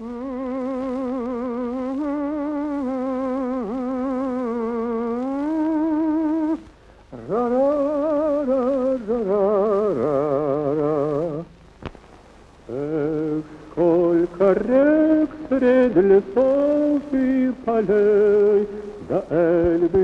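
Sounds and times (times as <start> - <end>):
man singing with vibrato: 0.0 - 11.6, 12.6 - 20.0.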